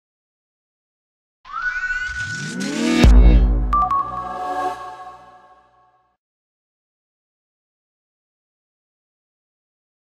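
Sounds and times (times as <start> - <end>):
synthesized whooshing riser: 1.5 - 5.8.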